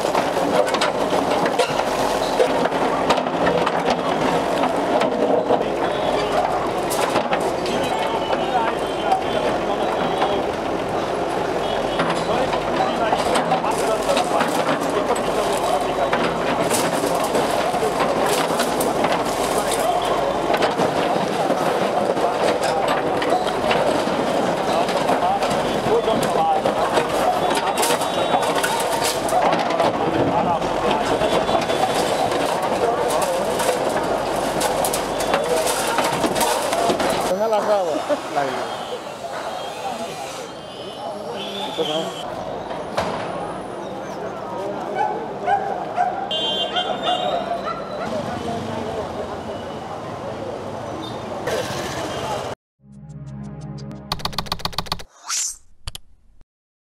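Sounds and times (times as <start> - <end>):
bricks and rubble crashing: 0.0 - 8.9, 11.8 - 37.3
crowd voices: 0.0 - 52.6.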